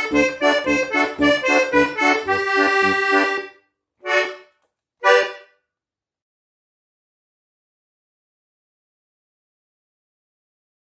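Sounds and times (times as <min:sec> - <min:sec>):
accordion chord: 0:00.0 - 0:05.6.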